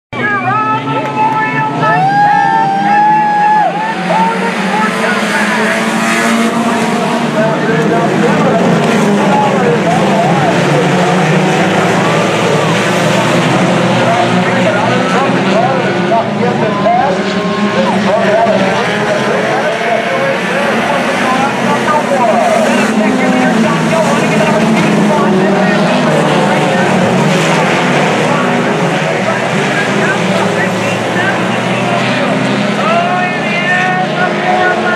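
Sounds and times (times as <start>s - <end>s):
race car engines revving: 0.2s - 34.9s.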